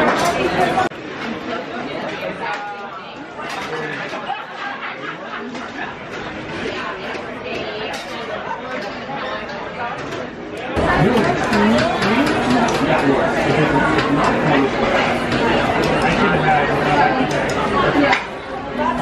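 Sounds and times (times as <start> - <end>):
murmur of diners talking: 0.0 - 19.0.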